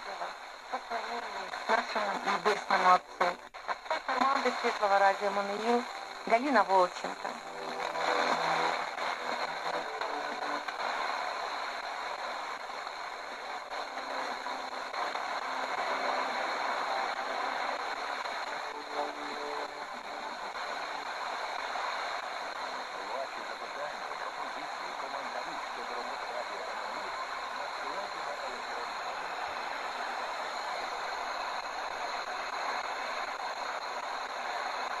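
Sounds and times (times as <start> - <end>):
radio static hiss: 0.0 - 35.0
faint radio voice: 22.8 - 31.3.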